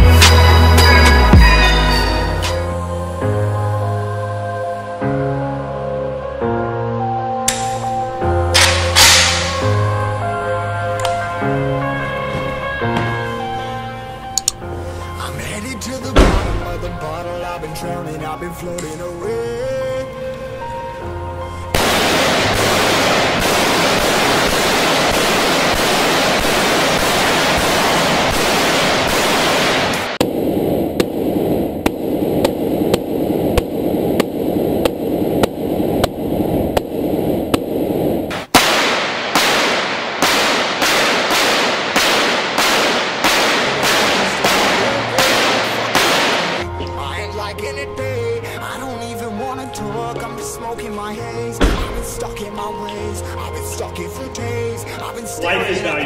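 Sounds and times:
song music: 0:00.0 - 0:37.1, 0:38.3 - 0:56.0
separate gunshots: 0:08.6 - 0:09.8, 0:21.8 - 0:37.7, 0:38.3 - 0:46.6
automatic gunfire: 0:21.8 - 0:30.2, 0:38.5 - 0:46.6.

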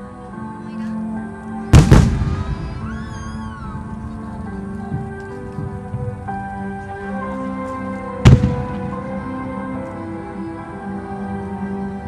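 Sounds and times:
music with held tones: 0:00.0 - 0:12.0
loud firework bang: 0:01.8 - 0:02.9, 0:08.2 - 0:09.0.

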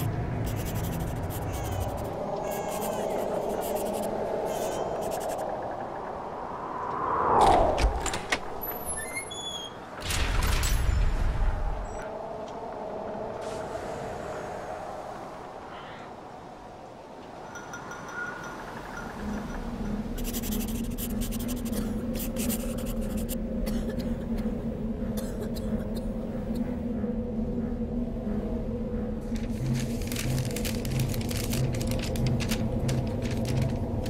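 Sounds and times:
quill pen scratching paper: 0:00.0 - 0:05.4
low steady hum: 0:18.6 - 0:34.0
steady low drone: 0:18.6 - 0:34.0.

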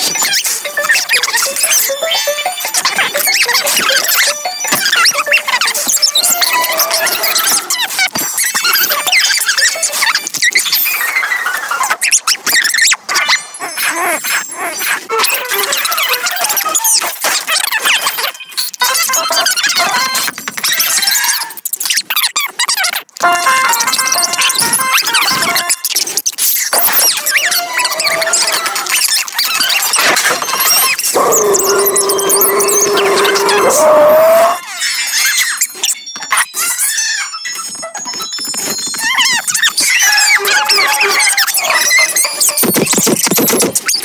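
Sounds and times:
sped-up squeaky cartoon chatter: 0:00.0 - 0:44.0.

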